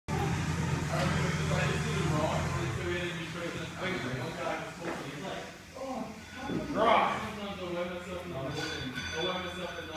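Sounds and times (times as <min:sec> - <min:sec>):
faint voices: 0:00.1 - 0:09.7
low mechanical hum: 0:00.1 - 0:09.9.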